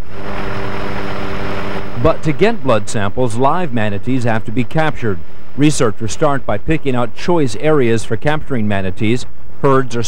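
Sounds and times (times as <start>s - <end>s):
aircraft engine droning: 0.0s - 10.0s.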